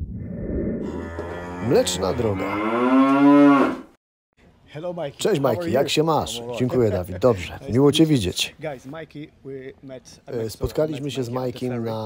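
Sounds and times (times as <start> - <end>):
cow mooing: 0.8 - 3.9.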